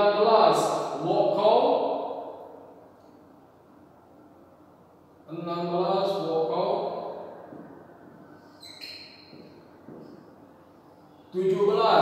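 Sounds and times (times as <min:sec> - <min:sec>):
man talking: 0:00.0 - 0:02.1, 0:05.3 - 0:07.2, 0:11.4 - 0:12.0
room hum: 0:00.0 - 0:12.0.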